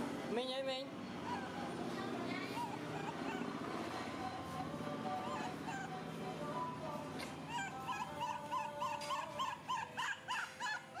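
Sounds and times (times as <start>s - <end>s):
baby monkey squeaking: 1.2s - 6.1s, 7.3s - 11.0s.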